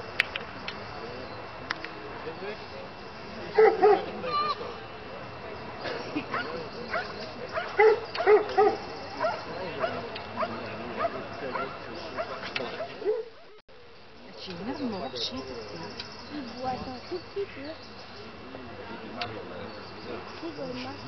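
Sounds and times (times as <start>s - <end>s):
dog barking: 3.6s - 4.1s, 6.3s - 13.4s.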